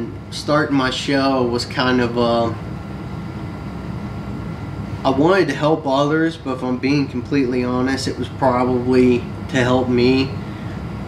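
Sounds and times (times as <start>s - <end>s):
air conditioner rumble: 0.0s - 11.0s.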